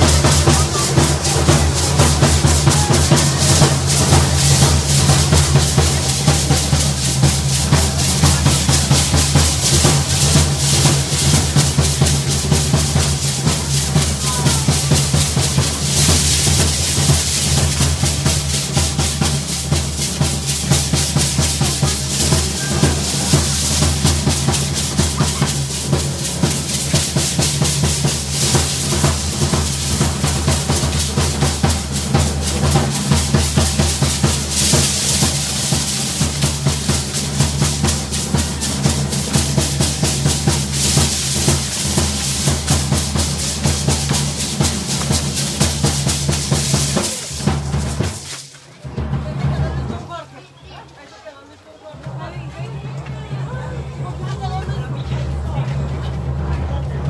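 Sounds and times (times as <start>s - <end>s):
large drums beaten fast: 0.0s - 50.3s, 52.0s - 57.0s.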